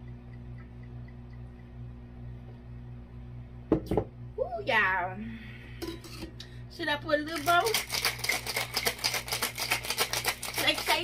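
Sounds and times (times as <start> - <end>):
ice rattling in cocktail shaker: 7.3 - 11.0.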